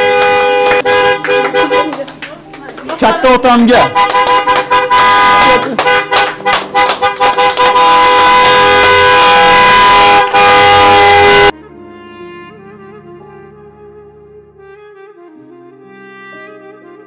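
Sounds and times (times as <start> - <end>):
car horns honking: 0.0 - 2.2, 3.2 - 11.6.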